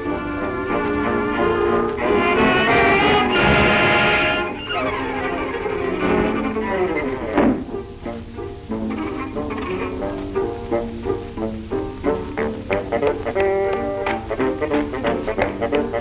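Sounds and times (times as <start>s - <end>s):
falling slides: 0.0s - 16.0s
orchestral held chord: 0.0s - 16.0s
plucked string notes: 0.0s - 16.0s
swooping glide: 0.0s - 16.0s.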